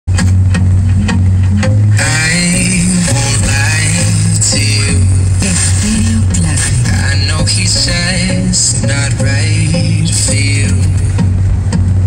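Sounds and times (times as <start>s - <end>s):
pop song with bass and beat: 0.1s - 12.0s
person singing: 1.9s - 11.2s.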